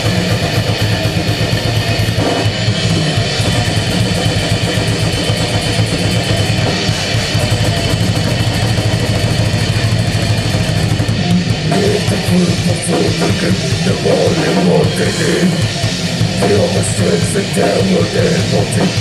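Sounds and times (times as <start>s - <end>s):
distorted electric guitars: 0.0s - 19.0s
fast dense drumming: 0.0s - 19.0s.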